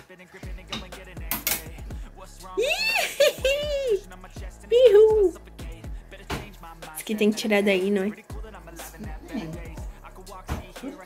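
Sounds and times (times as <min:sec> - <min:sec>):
sharp metallic clicks: 0:01.3 - 0:01.7
high voice: 0:02.6 - 0:04.0, 0:04.7 - 0:05.4.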